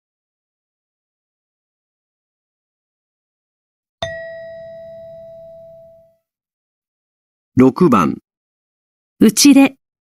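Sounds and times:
single chime ringing: 0:04.0 - 0:06.2.

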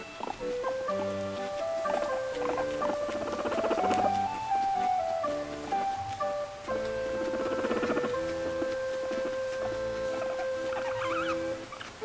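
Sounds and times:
background music: 0:00.0 - 0:12.0
guinea pig pulsed sounds: 0:00.0 - 0:12.0.

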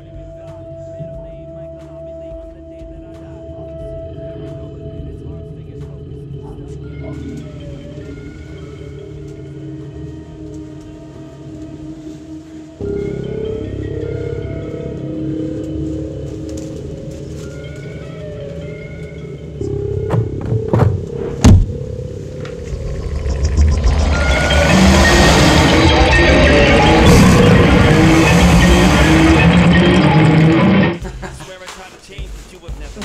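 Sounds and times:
low sustained drones: 0:03.3 - 0:31.0
faint high tones: 0:17.4 - 0:31.0
sharp loud hits: 0:20.0 - 0:21.9.

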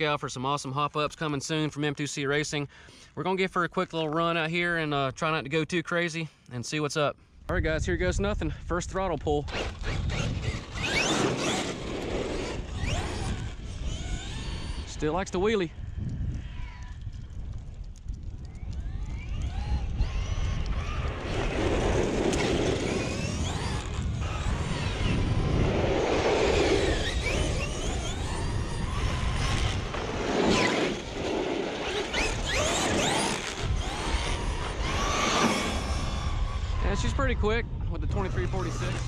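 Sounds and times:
rc truck motor whine: 0:09.4 - 0:17.3, 0:17.9 - 0:39.0.

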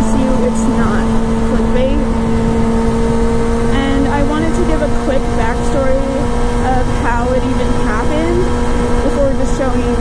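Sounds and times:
motorcycle engine cruising: 0:00.0 - 0:10.0
wind noise on microphone: 0:00.0 - 0:10.0.

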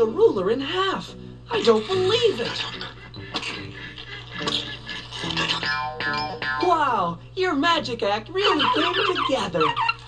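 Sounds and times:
cartoon soundtrack music: 0:01.6 - 0:06.7.

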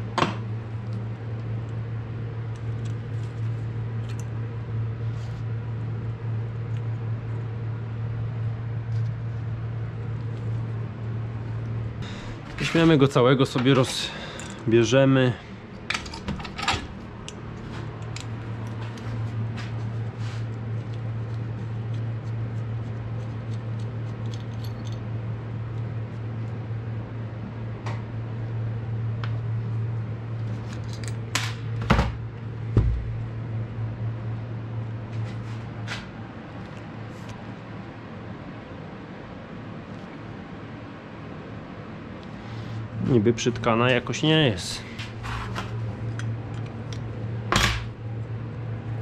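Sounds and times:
steady low hum: 0:00.0 - 0:49.0.

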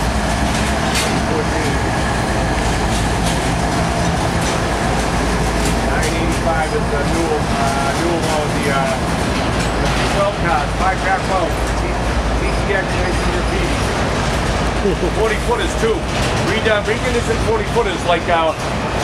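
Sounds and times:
freight train rumbling past: 0:00.0 - 0:19.0
train wheels clicking: 0:00.0 - 0:19.0.

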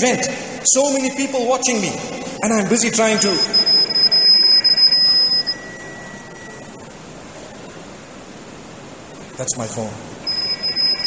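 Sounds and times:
low steady hiss: 0:00.0 - 0:11.0.

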